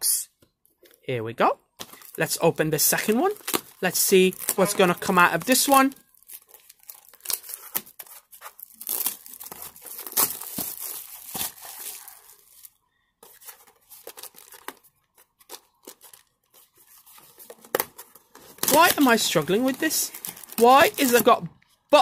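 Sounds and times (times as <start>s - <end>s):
plastic shrink wrap tearing: 3.2s - 12.7s, 18.5s - 21.4s.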